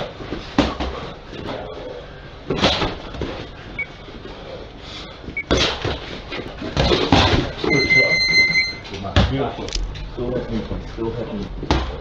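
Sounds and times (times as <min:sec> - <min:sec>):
high electronic beep: 0:07.7 - 0:08.8.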